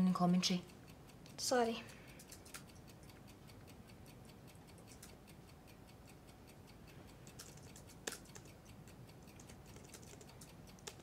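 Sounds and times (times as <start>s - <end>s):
laptop keyboard typing: 1.2s - 3.2s, 4.5s - 5.2s, 7.2s - 11.0s.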